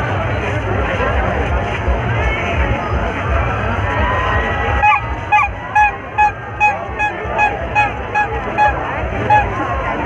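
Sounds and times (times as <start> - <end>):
crowd hubbub: 0.0 - 10.0.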